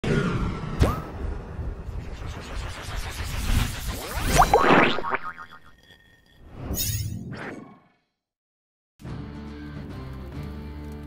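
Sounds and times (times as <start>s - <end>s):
rumbling noise: 0.2s - 5.7s.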